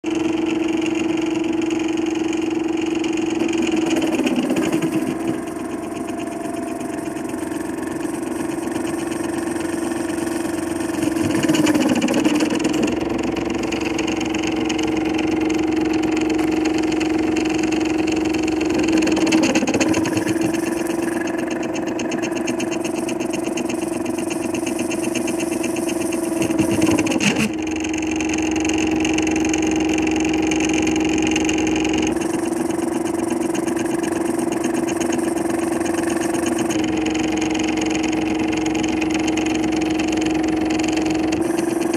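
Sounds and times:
steady hum: 0:00.3 - 0:30.2
stepper motors whirring: 0:02.4 - 0:41.9.

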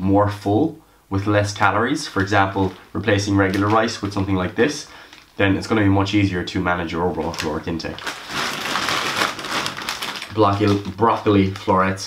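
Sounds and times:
plastic bag crinkling: 0:02.0 - 0:05.4, 0:07.0 - 0:12.0.

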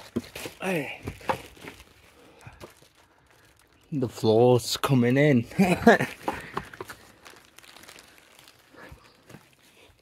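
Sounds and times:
floorboards cracking: 0:00.0 - 0:01.9, 0:05.6 - 0:07.3.

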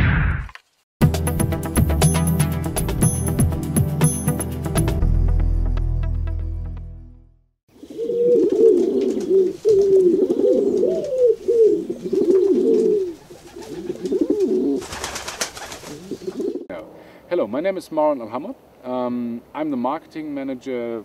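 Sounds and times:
pigeons cooing: 0:07.7 - 0:16.7.

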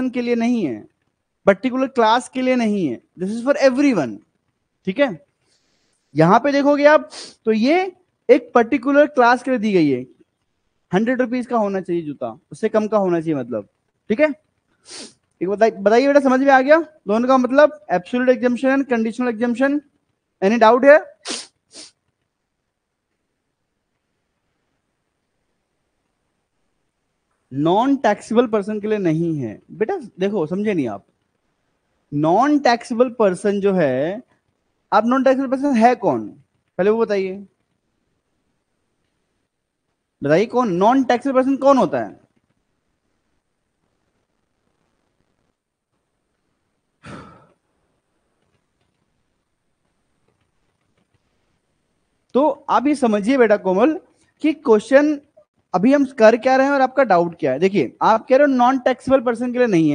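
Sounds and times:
man sneezing: 0:21.2 - 0:22.0, 0:47.0 - 0:47.6
man sighing: 0:47.0 - 0:47.6.

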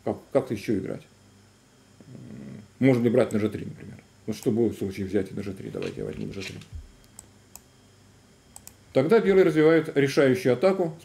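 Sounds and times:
computer mouse clicking: 0:05.8 - 0:07.7, 0:08.5 - 0:08.8.

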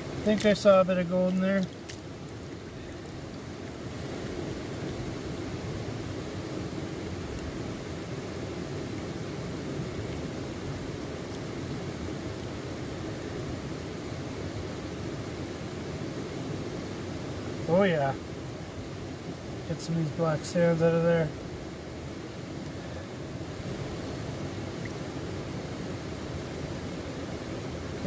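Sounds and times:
river water sloshing in a pan: 0:00.0 - 0:19.8.

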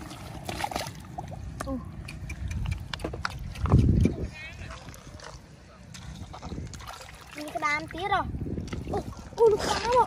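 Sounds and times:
heavy low water slosh: 0:00.0 - 0:01.6, 0:03.6 - 0:10.0
wet clicks and splashes in mud: 0:00.4 - 0:04.2.

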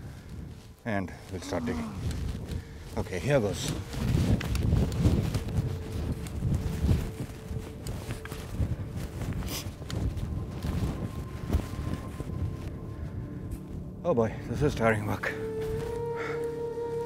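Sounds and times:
sand scraping and swishing: 0:00.0 - 0:13.4.

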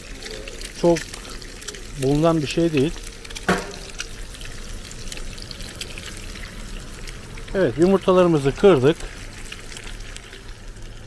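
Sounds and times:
egg cracking: 0:00.0 - 0:07.5, 0:09.0 - 0:11.0
eggs sizzling in a pan: 0:00.0 - 0:11.0.

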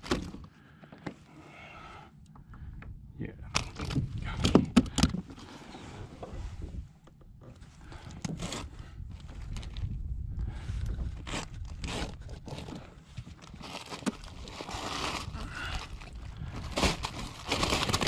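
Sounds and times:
bag scraping and handling: 0:08.3 - 0:08.8, 0:11.1 - 0:18.0.

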